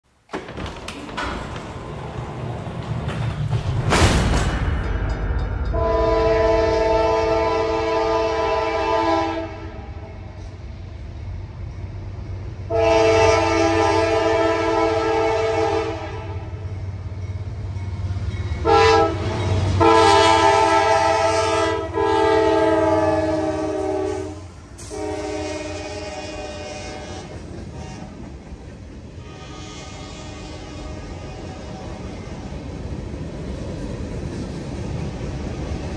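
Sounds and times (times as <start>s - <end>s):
locomotive rumble: 0.2s - 35.9s
freight cars rumbling past: 0.3s - 5.8s
train air horn: 5.7s - 10.2s, 12.7s - 16.6s, 18.6s - 28.2s, 29.2s - 32.1s.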